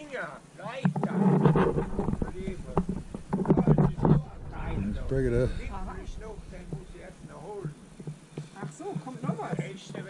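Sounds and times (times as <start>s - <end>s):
people talking: 0.0s - 7.8s, 8.6s - 10.0s
tractor engine rumble: 1.5s - 8.5s.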